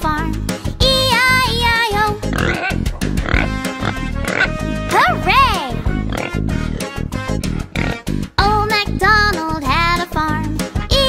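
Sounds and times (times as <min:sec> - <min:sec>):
upbeat children's song music: 0:00.0 - 0:11.0
cartoon pig oinks: 0:02.2 - 0:04.5, 0:06.1 - 0:06.9, 0:07.6 - 0:08.0.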